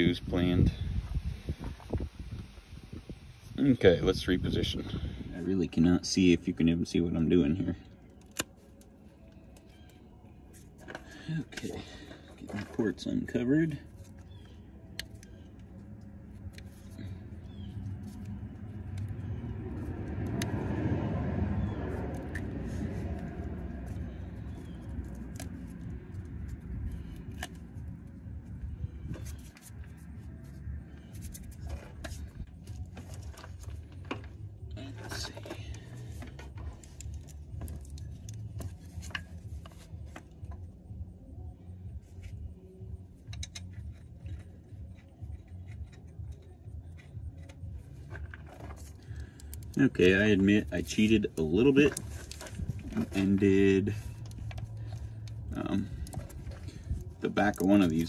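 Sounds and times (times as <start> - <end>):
metallic clicks and scrapes: 21.6 - 41.1, 42.0 - 58.0.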